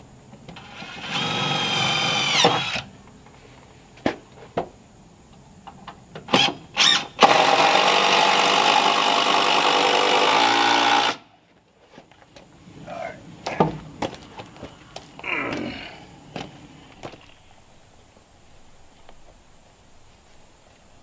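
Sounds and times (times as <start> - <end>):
cordless drill driving screws: 0.6 - 2.9, 6.4 - 11.2.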